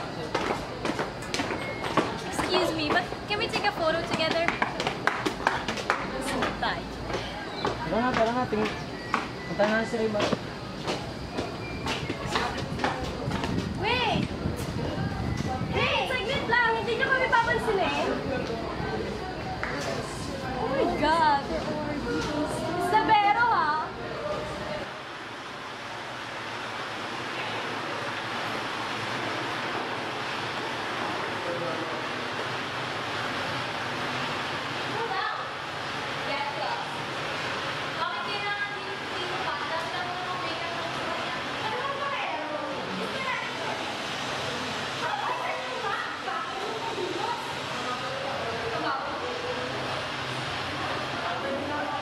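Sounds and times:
chattering voices: 0:00.0 - 0:26.9, 0:27.7 - 0:52.0
rushing background noise: 0:00.0 - 0:52.0
footsteps on concrete stairs: 0:00.2 - 0:13.7.

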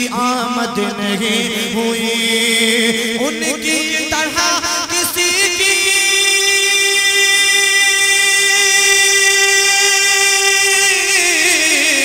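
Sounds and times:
man chanting long note: 0:05.2 - 0:12.0.

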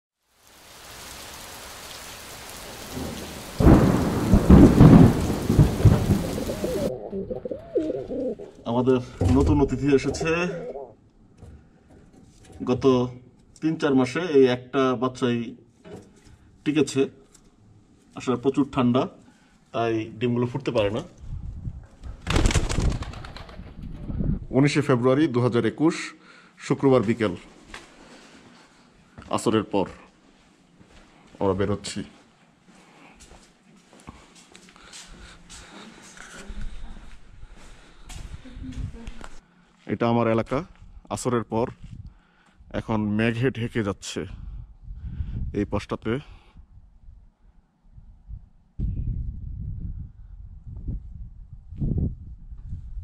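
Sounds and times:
rain hiss: 0:00.2 - 0:06.9
rolling thunder: 0:02.6 - 0:08.5
pigeon wings flapping: 0:04.8 - 0:06.9, 0:22.1 - 0:23.8
pigeons cooing: 0:05.4 - 0:08.6, 0:10.0 - 0:10.9.

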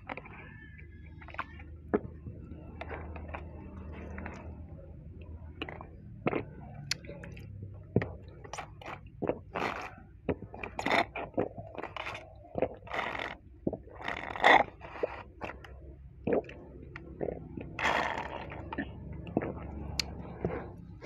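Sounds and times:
slurping through a straw: 0:00.0 - 0:04.6, 0:05.5 - 0:21.0
wet mouth clicks and swallows: 0:05.6 - 0:20.8.

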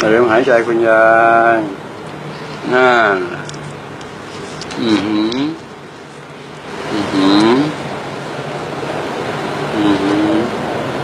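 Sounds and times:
person groaning: 0:06.9 - 0:07.8, 0:09.7 - 0:10.5.

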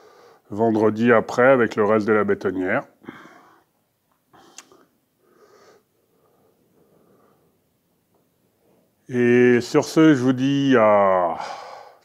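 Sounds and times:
faint breath: 0:00.0 - 0:00.5, 0:03.0 - 0:03.7, 0:04.3 - 0:07.7, 0:11.4 - 0:12.0.

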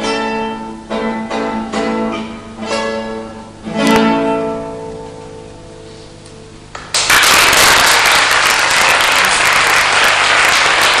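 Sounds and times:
classical guitar chord ringing: 0:00.0 - 0:06.0
audience applause: 0:06.8 - 0:11.0.

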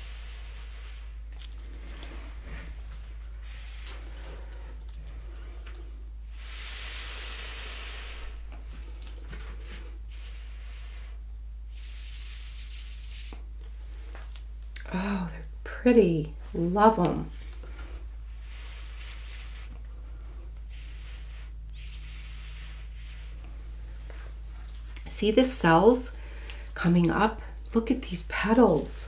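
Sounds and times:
air hissing through tube: 0:00.0 - 0:13.5, 0:17.8 - 0:24.4
steady low hum: 0:00.0 - 0:29.0.

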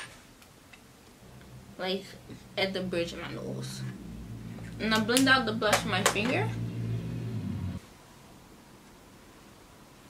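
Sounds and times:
low steady hum: 0:01.0 - 0:08.2.

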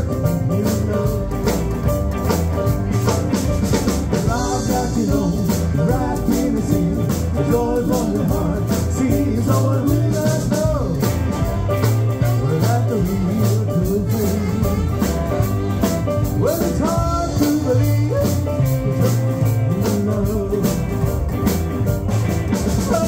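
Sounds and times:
drum kit: 0:00.0 - 0:23.0
electric guitar: 0:00.0 - 0:23.0
electric piano: 0:00.0 - 0:23.0
upright double bass: 0:00.0 - 0:23.0
saxophone: 0:11.2 - 0:16.3.

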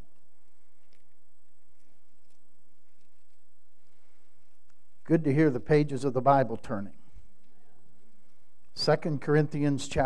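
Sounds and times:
pages being turned: 0:00.0 - 0:05.0
low room hum: 0:00.0 - 0:10.0.

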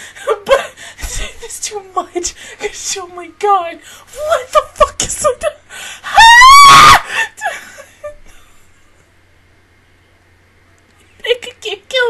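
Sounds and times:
woman's high-pitched scream: 0:06.1 - 0:07.1.

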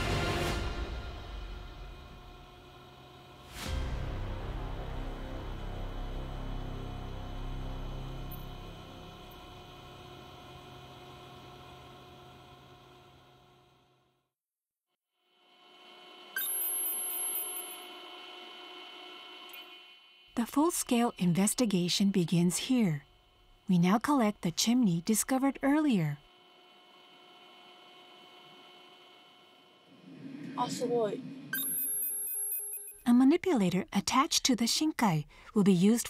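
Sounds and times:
electronic hum of held tones: 0:15.6 - 0:29.9, 0:31.6 - 0:33.1
high-pitched beeps: 0:16.4 - 0:17.9, 0:31.6 - 0:33.0.

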